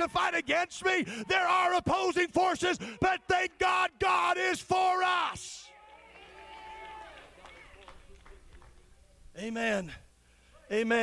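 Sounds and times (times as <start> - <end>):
scattered claps: 6.2 - 8.9.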